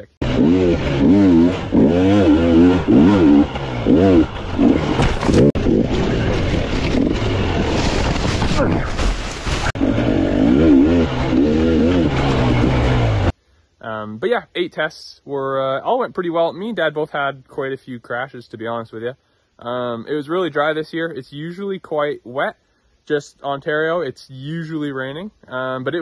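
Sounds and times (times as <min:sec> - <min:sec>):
dirt bike engine revving: 0:00.0 - 0:13.3
wind rush: 0:04.2 - 0:11.4.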